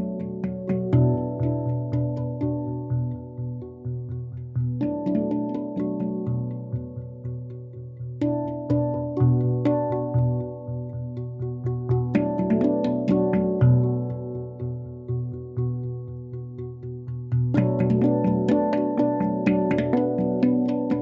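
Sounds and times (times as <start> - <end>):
deep low handpan note: 0.0 - 21.0
handpan melody: 0.0 - 21.0.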